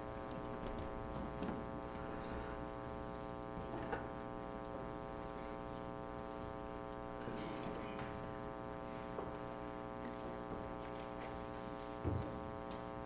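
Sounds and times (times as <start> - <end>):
electrical hum and buzz: 0.0 - 13.0
faint knocks and shuffling: 0.0 - 13.0.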